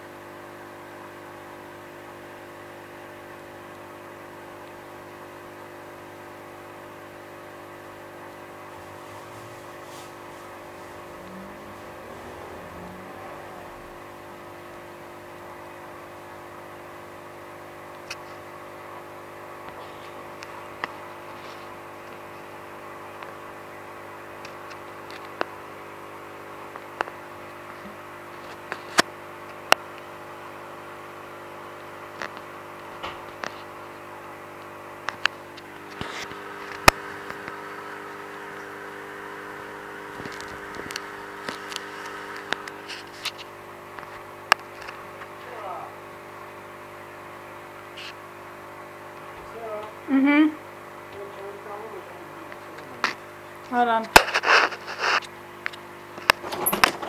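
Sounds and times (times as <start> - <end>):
small motor humming: 8.3 - 15.9, 35.4 - 44.2.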